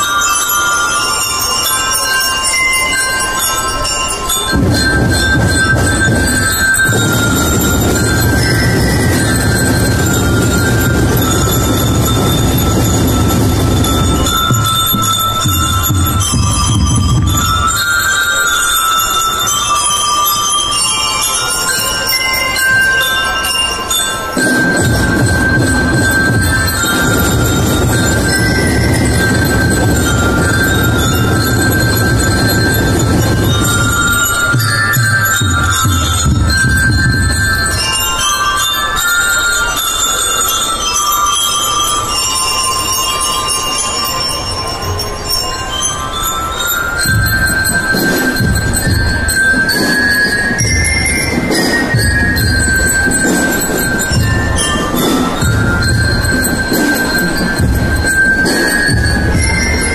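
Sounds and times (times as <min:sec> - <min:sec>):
bell lyres ringing: 0:00.0 - 0:59.9
drum and lyre band playing: 0:04.2 - 0:21.2, 0:24.2 - 0:38.6, 0:44.4 - 0:59.9.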